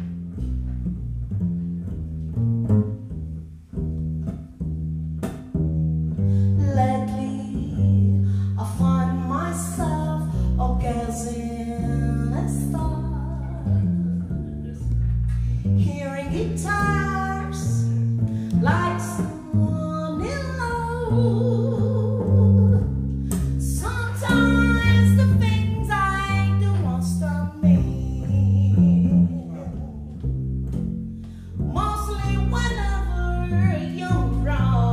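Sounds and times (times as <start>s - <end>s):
plucked double bass: 0.0s - 34.9s
woman singing: 6.6s - 13.8s, 15.8s - 30.1s, 31.7s - 34.9s.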